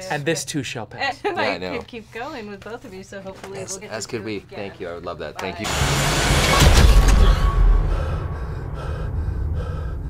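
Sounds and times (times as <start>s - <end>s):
person gasping for breath: 7.9s - 10.0s.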